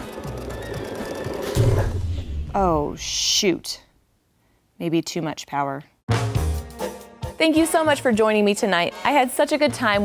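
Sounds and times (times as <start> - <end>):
sewing machine running fast: 0.0 - 1.6
background music: 0.0 - 2.2, 6.1 - 10.0
loud low thump: 1.6 - 3.0.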